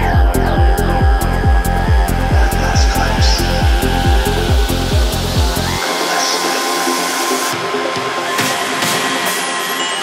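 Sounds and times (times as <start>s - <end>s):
kick drum with rolling bass: 0.0s - 5.8s.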